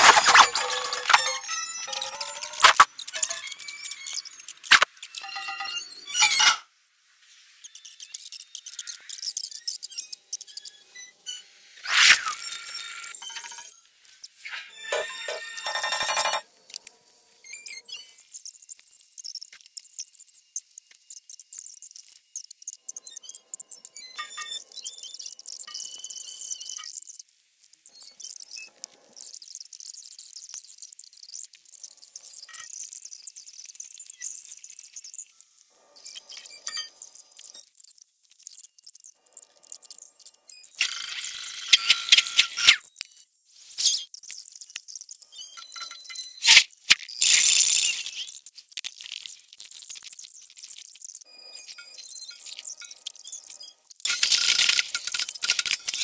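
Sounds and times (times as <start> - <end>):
sped-up soundtrack squeaky rattle: 0.0 - 6.6, 14.4 - 16.4.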